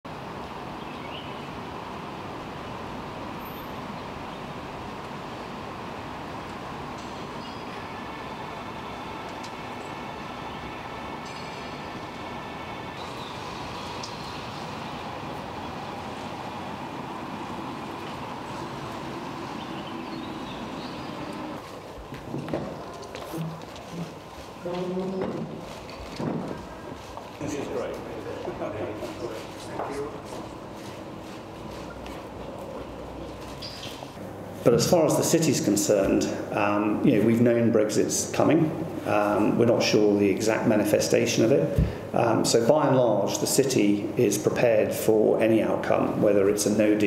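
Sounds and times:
thin steady whine: 0.1s - 42.6s
vehicle engine rumble: 1.8s - 34.3s.

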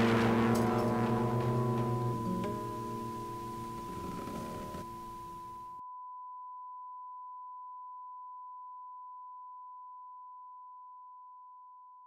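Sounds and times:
high-pitched sine tone: 0.0s - 12.0s.

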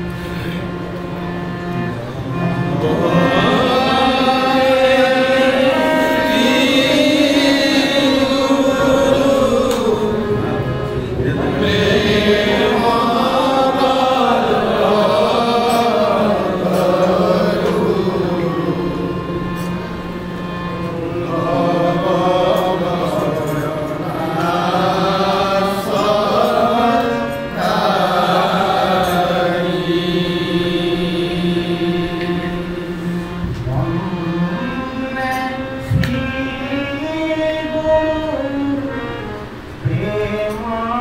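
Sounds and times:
harmonium: 0.0s - 41.0s
men chanting together: 2.8s - 19.1s, 21.1s - 32.6s.

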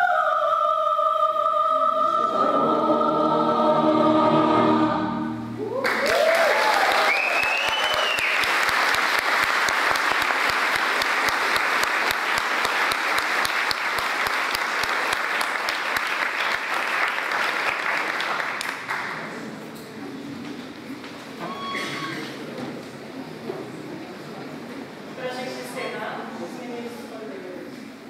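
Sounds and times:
audience cheering: 5.6s - 10.3s
audience applauding: 5.6s - 19.5s.

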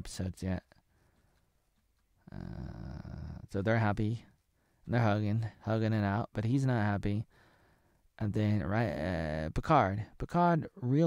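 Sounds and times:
man's drawn-out uh: 2.2s - 3.6s.

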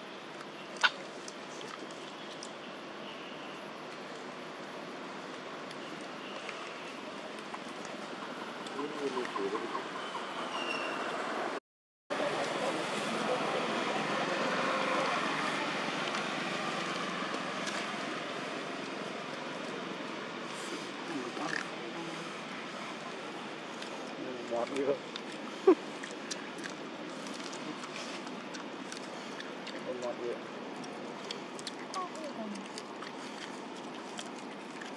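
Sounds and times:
outdoor background noise: 0.0s - 34.9s
distant voices murmuring: 6.3s - 10.6s.

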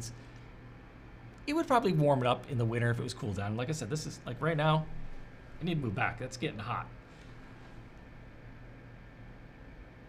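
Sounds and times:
fan heater airflow hiss: 0.0s - 10.0s.

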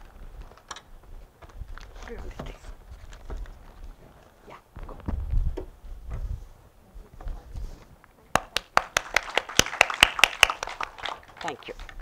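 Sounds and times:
low thuds: 4.7s - 7.7s
audience applause: 8.3s - 12.0s.

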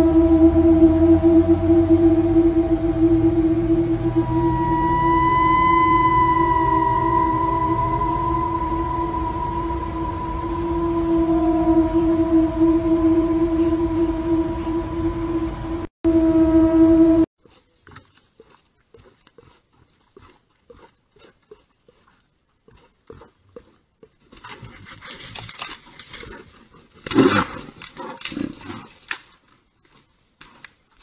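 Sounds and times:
loud siren-like tone: 0.0s - 17.3s.

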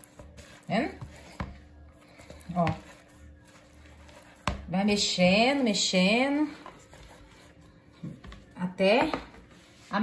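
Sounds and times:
hand kneading dough: 0.0s - 10.0s
woman speaking: 4.7s - 6.6s, 8.6s - 10.0s.

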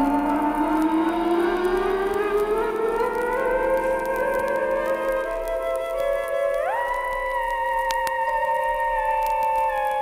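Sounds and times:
siren-like tone gliding upward: 0.0s - 10.0s.

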